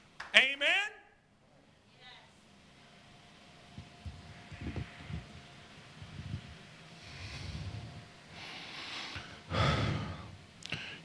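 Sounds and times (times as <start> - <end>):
man breathing and sighing: 7.0 - 11.0.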